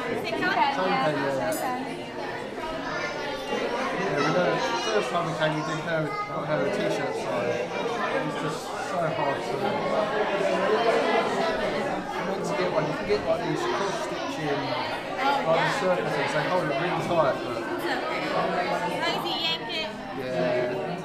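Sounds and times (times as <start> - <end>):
crowd chatter in dining room: 0.0 - 21.0.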